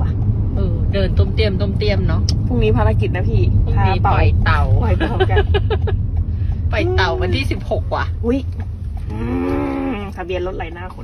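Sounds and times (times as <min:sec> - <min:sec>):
in-car road rumble: 0:00.0 - 0:11.0.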